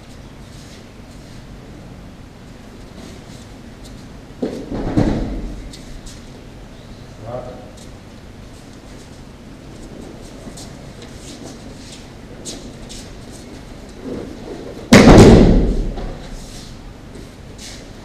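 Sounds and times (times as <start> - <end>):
body thudding onto mats: 4.4 - 5.7.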